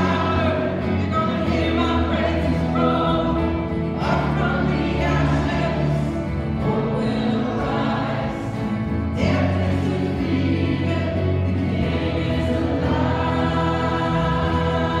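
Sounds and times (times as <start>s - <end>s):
congregation singing a hymn: 0.0s - 15.0s.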